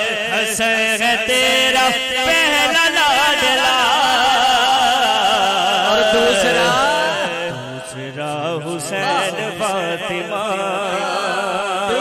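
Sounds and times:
men chanting devotional refrain: 0:00.0 - 0:12.0.

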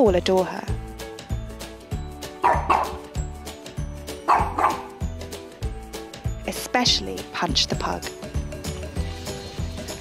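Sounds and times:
background music with steady beat: 0:00.0 - 0:10.0
dog barking: 0:02.4 - 0:03.1, 0:04.2 - 0:05.0.

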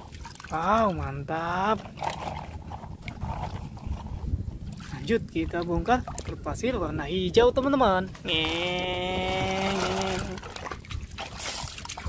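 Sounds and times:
water sloshing and lapping: 0:00.0 - 0:12.0.

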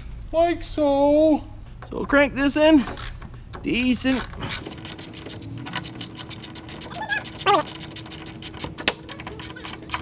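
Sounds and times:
whining vocal sound: 0:06.9 - 0:07.8.

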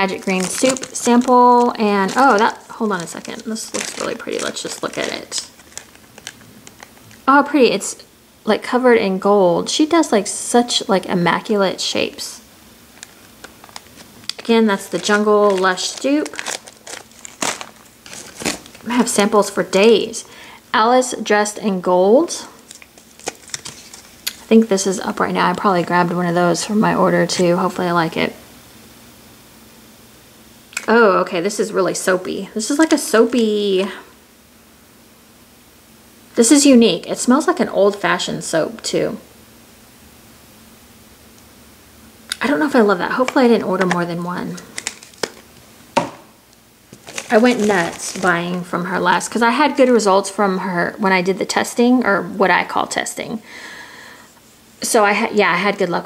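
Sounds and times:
plastic packaging crinkling: 0:00.0 - 0:07.3, 0:12.9 - 0:19.6, 0:22.6 - 0:24.6, 0:42.4 - 0:46.2, 0:46.9 - 0:49.3
plastic pack clicks: 0:13.0 - 0:18.8, 0:43.2 - 0:46.2.

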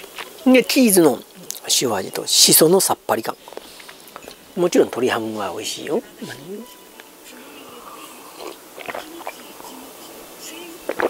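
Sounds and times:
person humming: 0:06.1 - 0:11.0
mouth sounds while drinking: 0:06.2 - 0:06.8, 0:07.6 - 0:09.8.

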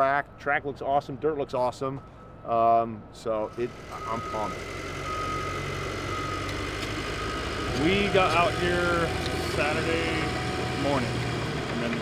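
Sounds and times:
dozer diesel engine running: 0:03.4 - 0:12.0.

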